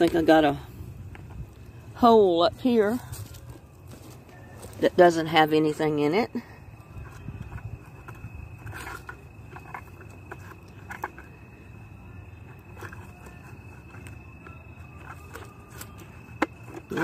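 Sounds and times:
footsteps on dry leaves: 0:02.9 - 0:05.0.

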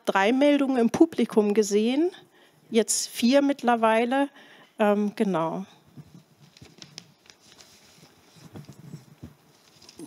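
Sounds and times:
faint rustling: 0:06.0 - 0:10.0.

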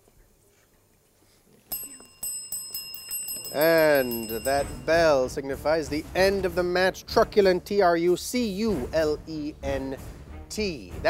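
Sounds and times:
bell ringing: 0:01.7 - 0:05.4.

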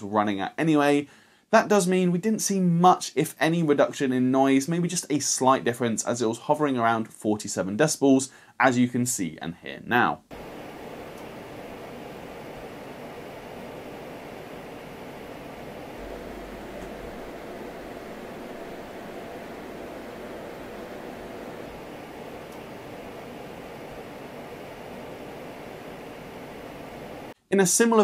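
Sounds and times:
computer fans whooshing: 0:10.3 - 0:27.4
low hum: 0:10.3 - 0:27.4.

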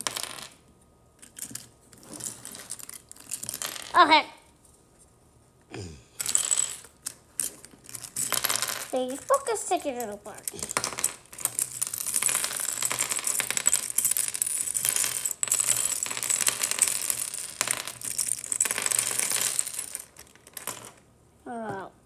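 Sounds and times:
plastic pieces clattering on wood: 0:01.2 - 0:04.0, 0:06.2 - 0:21.0
voice: 0:03.9 - 0:04.4, 0:09.0 - 0:10.8, 0:21.5 - 0:22.0.

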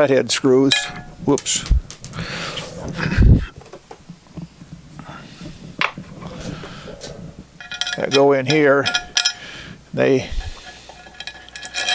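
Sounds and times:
metal parts clinking: 0:00.7 - 0:02.6.

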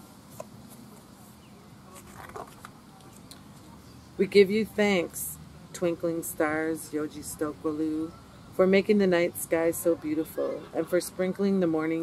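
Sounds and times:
book pages rustling: 0:00.2 - 0:03.7.

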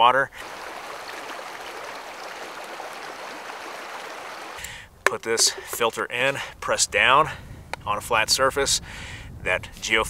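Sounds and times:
creek running over rocks: 0:00.4 - 0:05.8.

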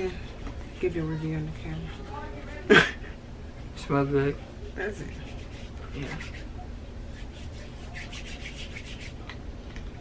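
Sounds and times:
hands rubbing together: 0:05.0 - 0:09.3.

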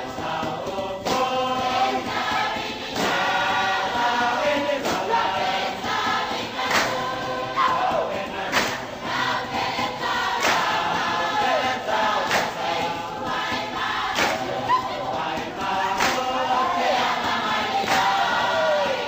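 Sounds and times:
group singing: 0:00.0 - 0:19.0
percussive drum beat: 0:00.0 - 0:19.0.

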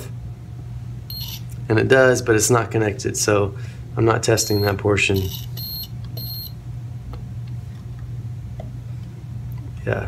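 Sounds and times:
steady low hum: 0:00.0 - 0:10.0
multimeter short beeps: 0:01.1 - 0:01.4, 0:04.4 - 0:06.6.

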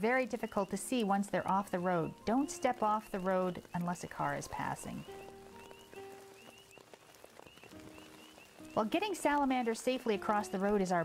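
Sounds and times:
faint background music: 0:00.0 - 0:06.8, 0:07.6 - 0:11.0
frogs peeping: 0:00.0 - 0:11.0.

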